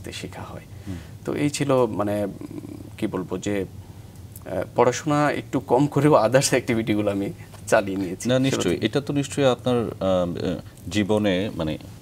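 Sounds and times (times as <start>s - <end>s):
man talking: 0.0s - 3.7s, 4.4s - 11.9s.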